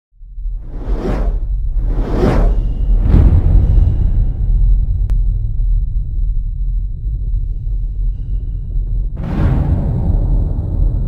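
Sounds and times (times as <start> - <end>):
deep rumble: 0.2 - 11.0
whoosh sound effect: 0.6 - 4.4.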